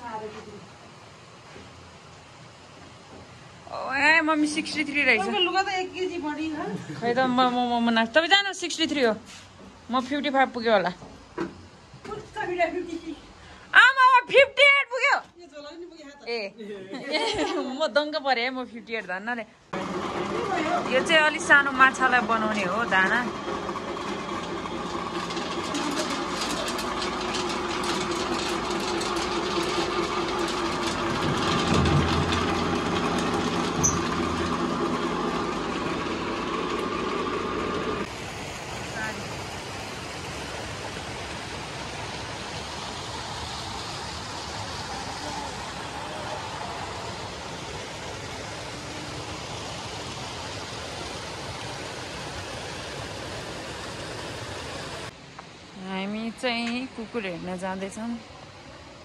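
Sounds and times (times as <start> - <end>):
pellet mill motor hum: 19.7 - 55.2
crackle of clicks and rattles: 23.8 - 34.8
water pouring and splashing: 38.0 - 55.6.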